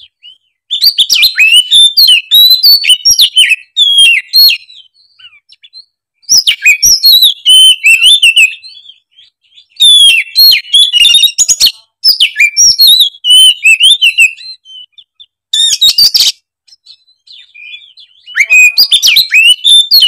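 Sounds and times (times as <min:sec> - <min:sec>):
bird singing whistled phrases: 0:00.0 - 0:20.0.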